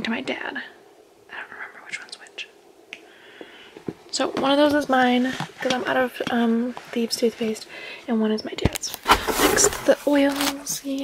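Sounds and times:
soft handling noises: 3.4 - 7.7, 8.6 - 11.0.

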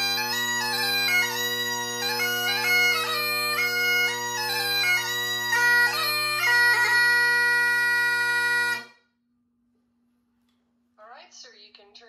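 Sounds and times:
bagpipe note over drones: 0.0 - 9.0.

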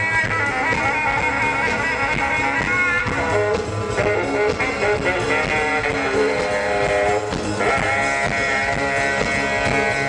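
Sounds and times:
drums and bass: 0.0 - 10.0
horns playing: 0.0 - 10.0.

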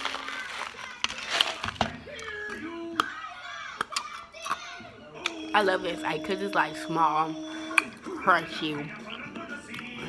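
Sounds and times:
ice cracking sharply: 0.0 - 1.9
ice crunching between teeth: 0.0 - 5.4
wordless vocal sounds: 4.9 - 10.0.

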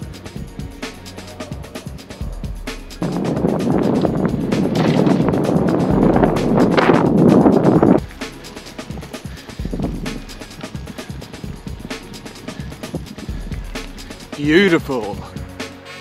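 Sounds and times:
bicycle riding rumble: 0.0 - 14.4
background music: 0.0 - 16.0
road noise: 0.7 - 16.0
wind noise: 1.4 - 14.4.

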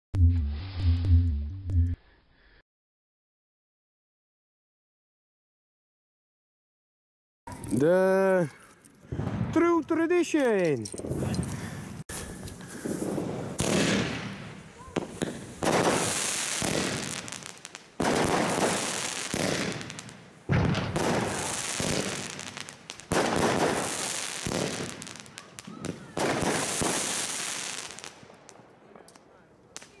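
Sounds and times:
firework salvos bursting: 12.7 - 28.3
small firework pops: 13.6 - 30.0.

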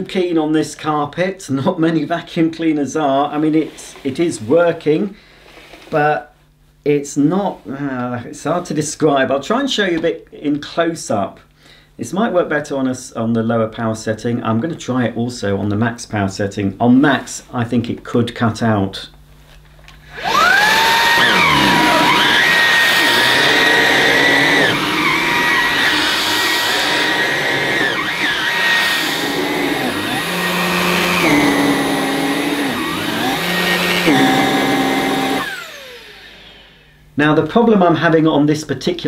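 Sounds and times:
stick vacuum whining on carpet: 20.1 - 36.9.

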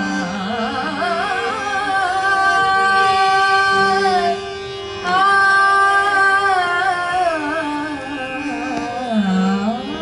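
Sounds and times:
woman singing: 0.0 - 4.4, 5.0 - 10.0
violin: 0.0 - 10.0.

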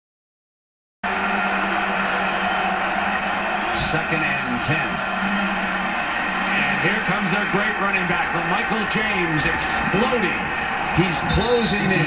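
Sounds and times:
stadium crowd noise on tv: 1.0 - 12.0.

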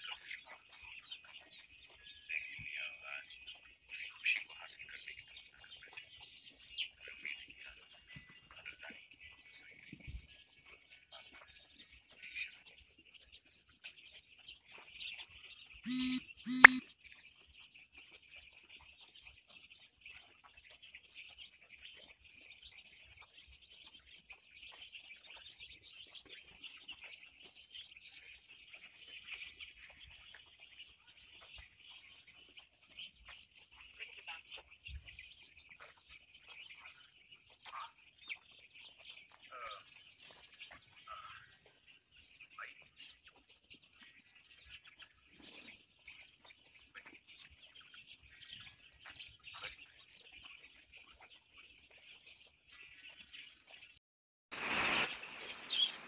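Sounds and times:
chicks peeping: 0.0 - 54.0
short loud bursts: 15.9 - 16.8.

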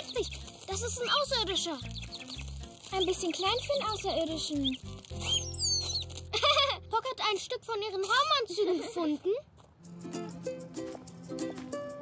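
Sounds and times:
cartoon bird chirping: 0.0 - 6.1
cartoon background music: 0.0 - 7.0.

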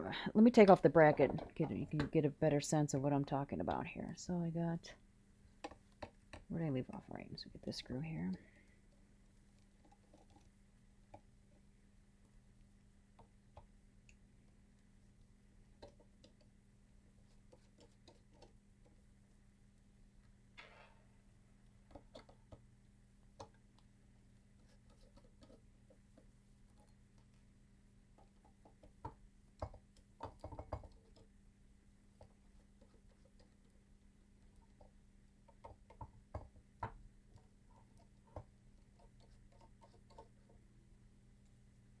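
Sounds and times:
low steady hum: 0.0 - 42.0.

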